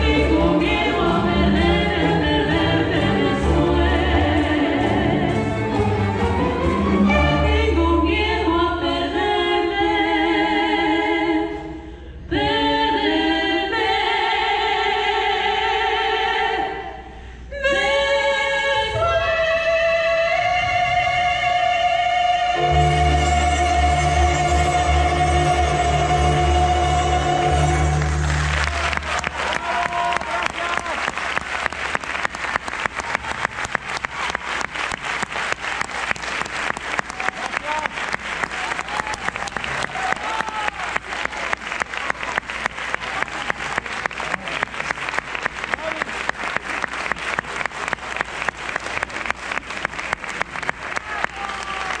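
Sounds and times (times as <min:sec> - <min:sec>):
orchestra chord: 0:22.6 - 0:28.8
audience applauding: 0:27.8 - 0:52.0.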